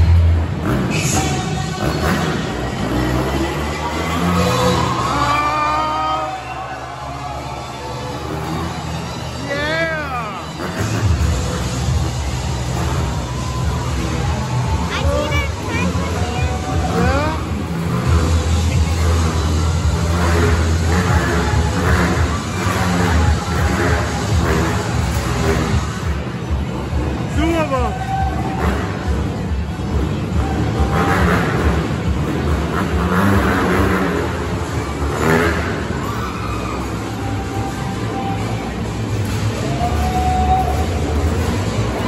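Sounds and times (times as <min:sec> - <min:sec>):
crowd chatter: 0:00.0 - 0:42.0
motorcycle engines revving: 0:00.0 - 0:42.0.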